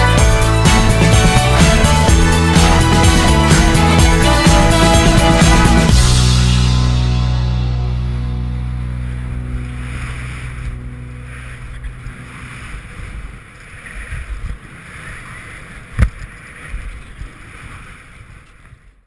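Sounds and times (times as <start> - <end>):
music: 0.0 - 12.8
rushing wind and snow: 8.4 - 19.0.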